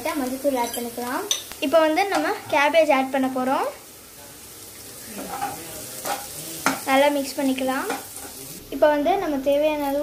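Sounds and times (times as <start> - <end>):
cabbage sizzling in hot oil: 0.0 - 10.0.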